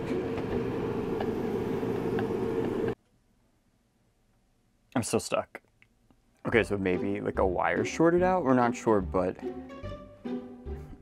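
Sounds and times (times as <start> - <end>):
mechanical hum with whine: 0.0 - 3.0.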